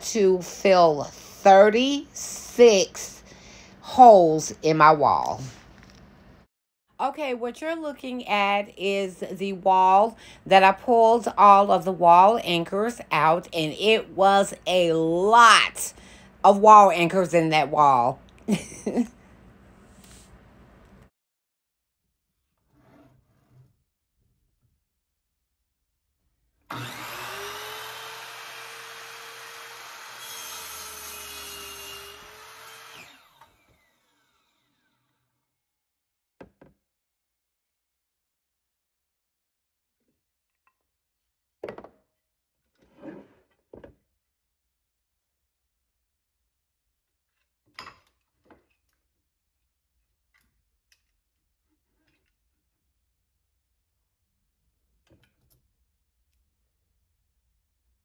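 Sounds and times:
miter saw motor whining: 0:26.7 - 0:35.0
saw blade cutting wood: 0:26.7 - 0:35.0.

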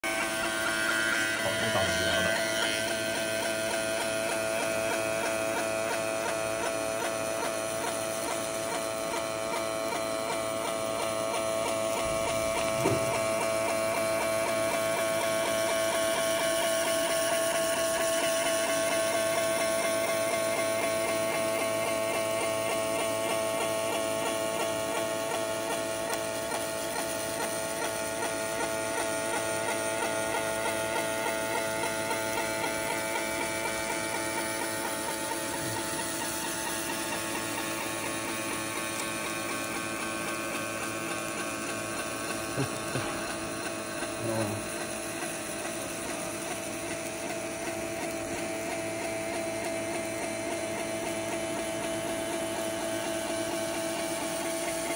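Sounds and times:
laser engraver buzzing: 0:00.0 - 0:54.9.

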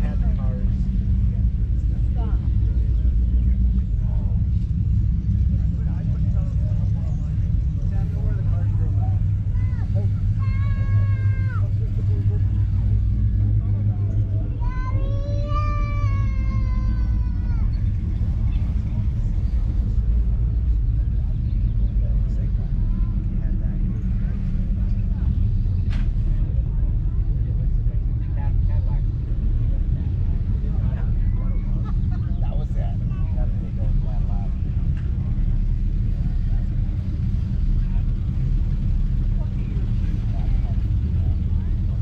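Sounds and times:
steady low rumble: 0:00.0 - 0:42.0.

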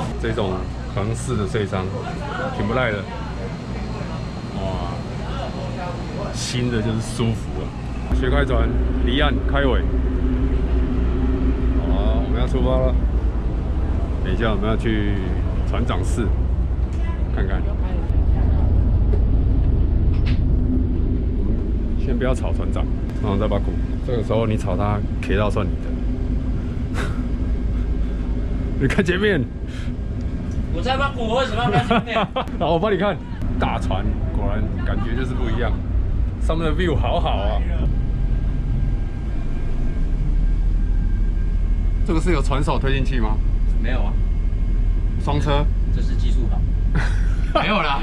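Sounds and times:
boat engines rumbling: 0:00.0 - 0:48.0
faint high whine: 0:00.0 - 0:48.0.

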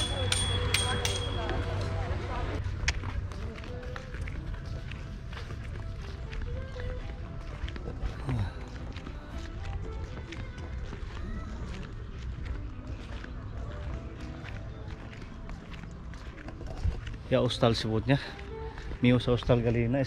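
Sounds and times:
faint voices: 0:00.0 - 0:20.0
footsteps on paved path: 0:00.0 - 0:20.0.

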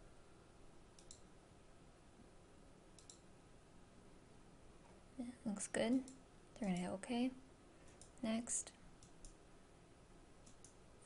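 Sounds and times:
low room hiss: 0:00.0 - 0:11.0
computer mouse clicks: 0:00.9 - 0:01.3, 0:03.0 - 0:03.3, 0:07.8 - 0:08.2, 0:09.0 - 0:09.4, 0:10.4 - 0:10.8.

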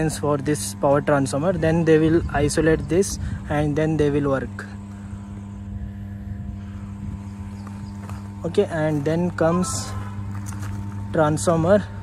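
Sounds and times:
transformer electrical hum: 0:00.0 - 0:12.0.

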